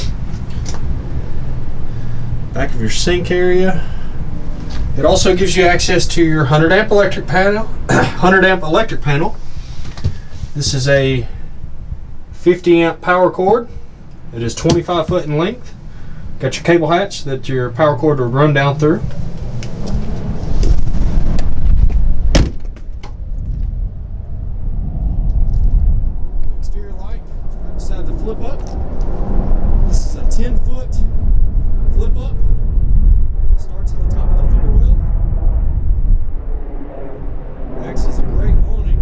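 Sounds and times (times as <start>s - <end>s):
low noisy rumble: 0.0s - 39.0s
wind buffeting microphone: 0.0s - 39.0s
sharp knock: 22.3s - 22.9s.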